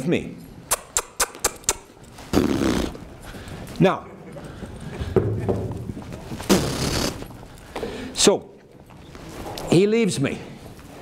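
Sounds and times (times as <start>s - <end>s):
sharp smacks: 0.7s - 1.9s
horse snorting burst of air: 2.3s - 3.0s, 6.4s - 7.2s.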